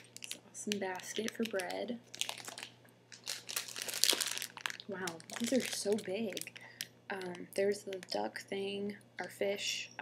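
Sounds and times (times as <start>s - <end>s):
plastic bags crinkling: 0.0s - 8.3s.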